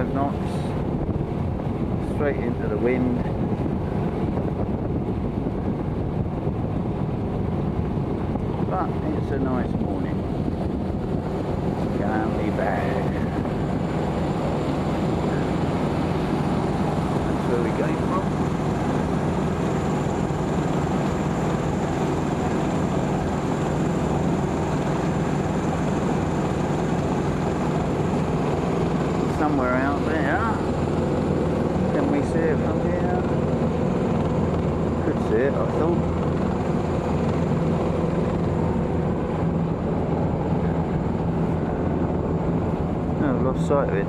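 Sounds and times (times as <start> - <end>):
boat engine droning: 0.0 - 44.0.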